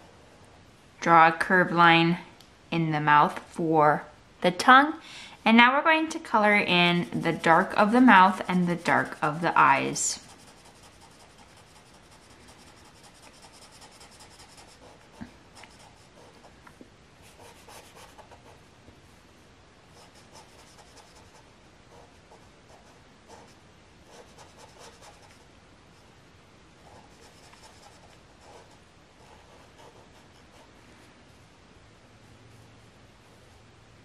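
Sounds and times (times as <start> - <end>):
marker scribbling on paper: 6.8 - 16.5, 17.3 - 18.5, 20.0 - 25.4, 26.9 - 30.8.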